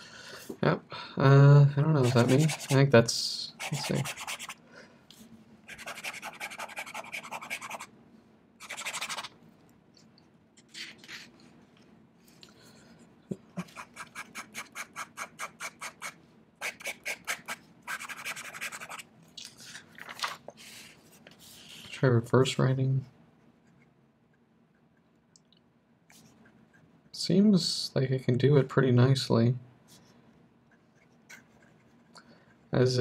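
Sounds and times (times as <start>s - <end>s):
fountain pen scratching paper: 2.0s - 2.8s, 3.6s - 4.6s, 5.7s - 7.9s, 8.6s - 9.3s, 13.6s - 19.0s.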